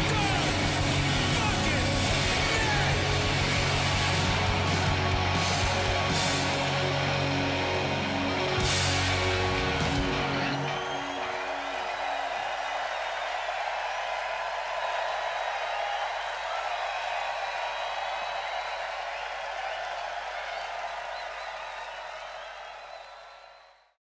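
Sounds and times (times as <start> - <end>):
rock band final chord: 0.0 - 11.5
crowd cheering and applauding: 0.0 - 24.0.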